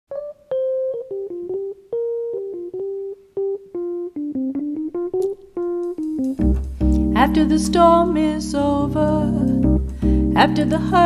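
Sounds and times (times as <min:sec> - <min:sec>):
keyboard single-note melody: 0:00.1 - 0:11.0.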